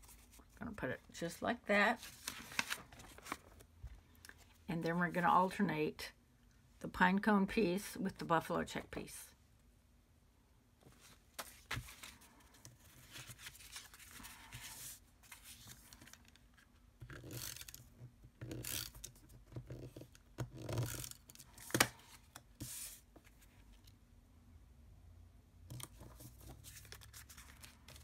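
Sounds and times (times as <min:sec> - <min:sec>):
paper rustling and sliding: 0:02.0 - 0:03.6, 0:10.9 - 0:16.4, 0:21.6 - 0:23.5.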